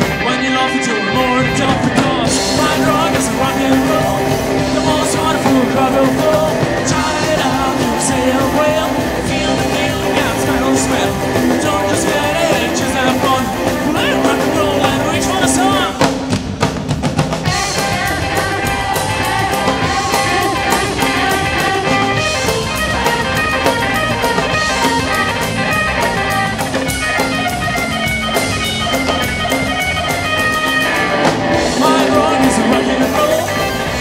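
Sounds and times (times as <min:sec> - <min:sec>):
electric guitar lead: 0:00.0 - 0:16.4, 0:17.3 - 0:34.0
drum kit: 0:00.0 - 0:34.0
electric bass: 0:00.0 - 0:34.0.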